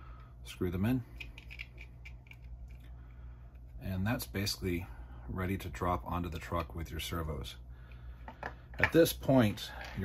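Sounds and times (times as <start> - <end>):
faint low hum: 0.0 - 10.0
small parts clicking and scratching: 1.0 - 3.9.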